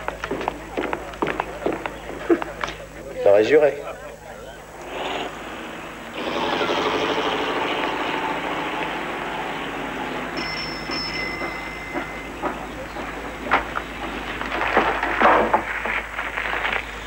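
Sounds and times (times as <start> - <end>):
car engine running: 4.8 - 15.3.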